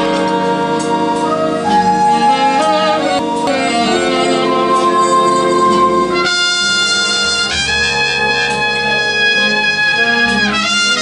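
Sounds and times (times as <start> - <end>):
jazz big band playing: 0.0 - 11.0.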